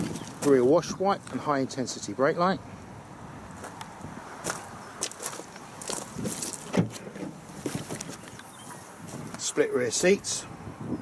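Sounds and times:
footsteps crunching on gravel: 0.0s - 1.4s, 3.6s - 3.8s, 4.4s - 6.7s, 7.5s - 8.4s.

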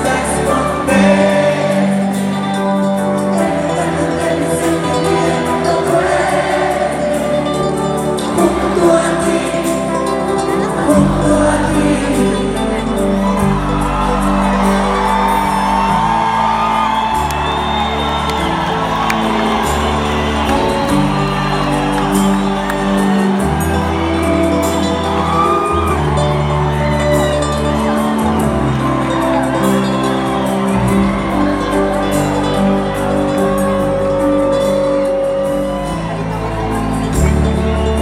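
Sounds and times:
live band playing: 0.0s - 38.0s
crowd whoops and whistles: 13.3s - 38.0s.

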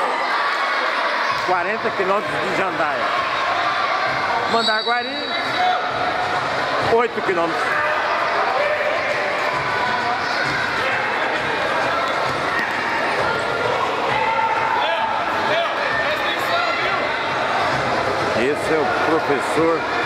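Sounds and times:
players and spectators calling out: 0.0s - 20.0s.

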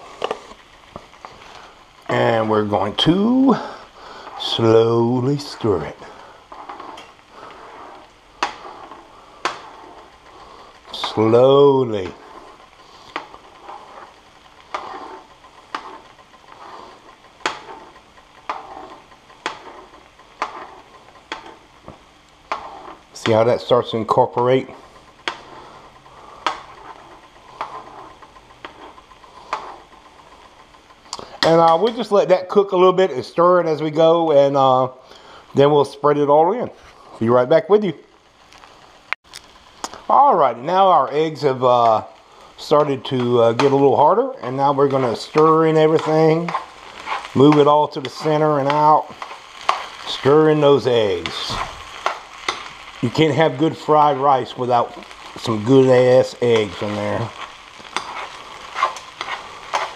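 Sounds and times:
faint sizzle: 0.0s - 59.9s
spoon scraping frying pan: 2.7s - 30.5s, 40.8s - 59.9s.

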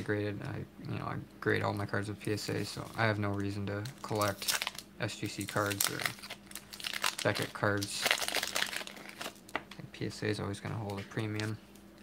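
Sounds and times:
cards rustling: 1.7s - 9.8s
paper wrapper crinkling and tearing: 2.4s - 9.7s.

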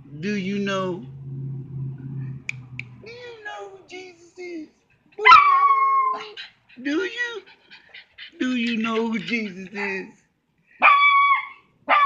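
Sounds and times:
small dog howling: 5.2s - 6.4s, 10.8s - 12.0s.

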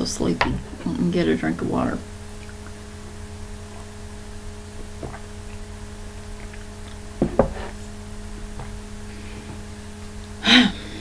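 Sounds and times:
steady low hum: 0.0s - 11.0s
mug knocking on hard surface: 7.2s - 7.8s.

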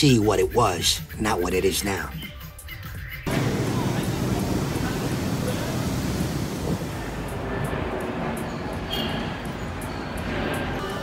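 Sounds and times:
city din: 3.3s - 11.0s
traffic roar: 3.3s - 11.0s.

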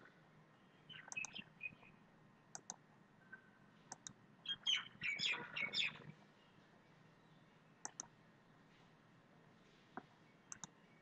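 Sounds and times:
computer mouse clicking: 1.1s - 1.4s, 2.5s - 2.8s, 3.9s - 4.2s, 7.8s - 8.1s, 10.0s - 10.8s.

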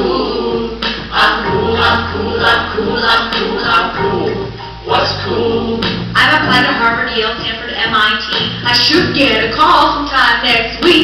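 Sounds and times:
group of voices singing: 0.0s - 7.3s.

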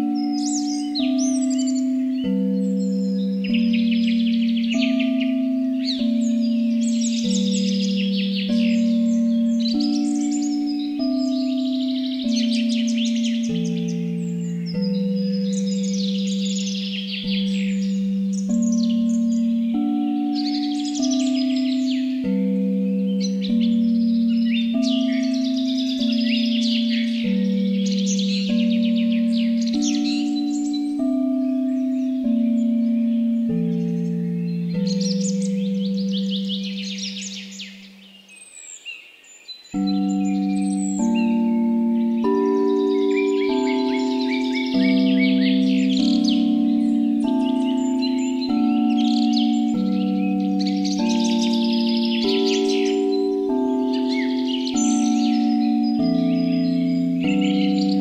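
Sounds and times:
singing bowl tones: 0.0s - 38.2s, 39.7s - 58.0s
songbirds chirping: 0.0s - 58.0s.

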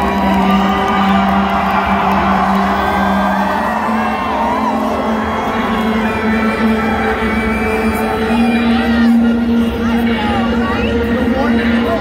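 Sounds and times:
crowd cheering and whooping: 0.0s - 9.2s.

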